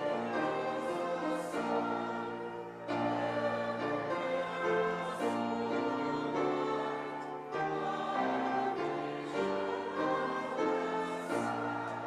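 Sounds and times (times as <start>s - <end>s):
congregation singing a hymn: 0.0s - 12.0s
piano accompaniment: 0.0s - 12.0s.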